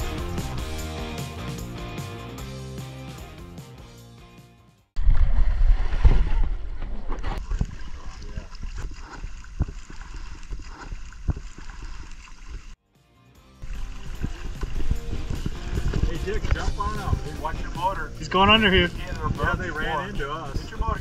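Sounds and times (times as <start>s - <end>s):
background music: 0.0s - 4.9s, 12.8s - 21.0s
water slapping boat hull: 5.6s - 12.8s, 13.6s - 21.0s
voices: 16.0s - 21.0s.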